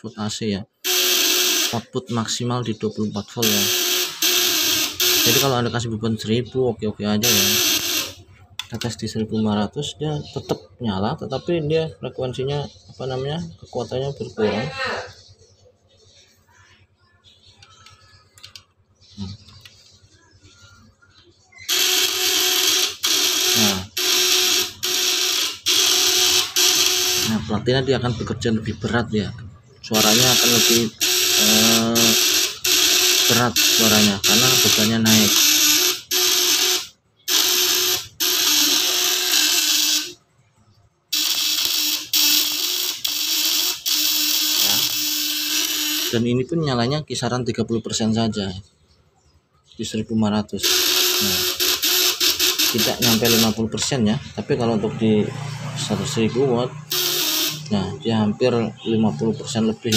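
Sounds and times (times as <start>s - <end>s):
loud electrical buzz: 3.4s - 5.7s, 7.2s - 8.3s, 21.7s - 27.5s, 30.0s - 40.2s, 41.1s - 46.3s, 50.6s - 53.7s, 55.2s - 57.9s.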